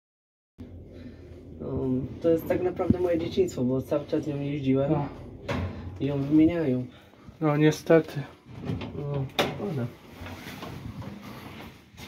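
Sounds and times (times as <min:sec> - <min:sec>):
men speaking: 0:06.0 - 0:10.0.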